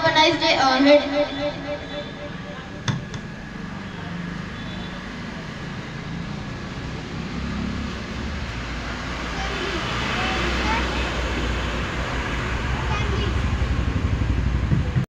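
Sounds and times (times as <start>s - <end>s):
low vehicle rumble: 0.0s - 15.0s.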